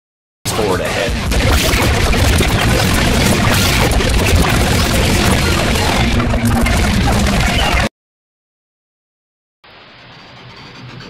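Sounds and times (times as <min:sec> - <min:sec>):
tape fast-forward noise with low rumble: 0:00.5 - 0:07.9, 0:09.6 - 0:11.0.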